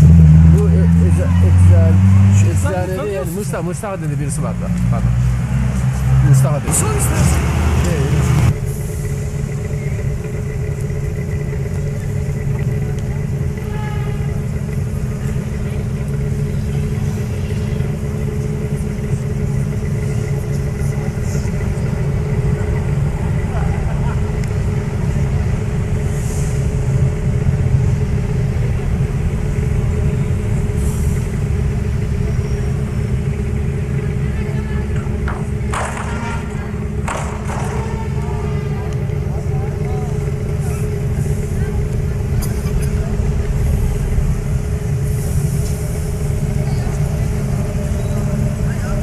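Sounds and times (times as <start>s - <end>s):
ferry engine rumbling: 0.0s - 49.0s.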